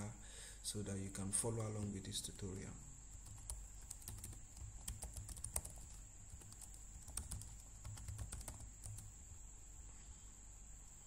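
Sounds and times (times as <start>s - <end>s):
keyboard typing clicks: 3.2s - 9.1s.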